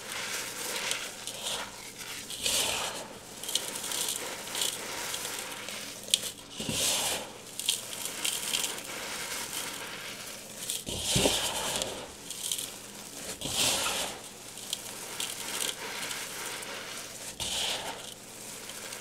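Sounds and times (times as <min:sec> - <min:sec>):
hands crumbling chalky chunks: 0:00.0 - 0:19.0.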